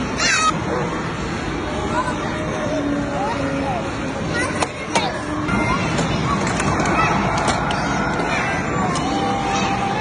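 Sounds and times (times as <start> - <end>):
child squealing: 0.2 - 0.6.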